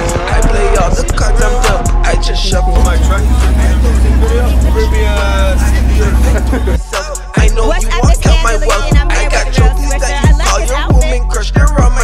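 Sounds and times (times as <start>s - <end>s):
deep bass hits: 0.0s - 12.0s
hip hop beat with heavy bass: 0.0s - 12.0s
person rapping: 0.0s - 12.0s.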